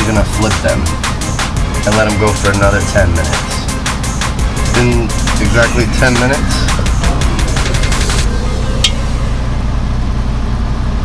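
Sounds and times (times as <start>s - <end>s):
low rumble: 0.8s - 11.0s.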